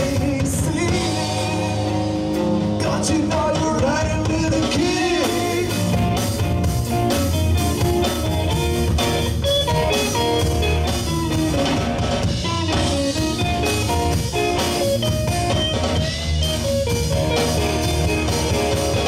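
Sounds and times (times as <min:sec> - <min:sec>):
drum kit beat: 0:00.0 - 0:19.0
electric bass: 0:00.0 - 0:19.0
electric guitar melody: 0:00.0 - 0:19.0.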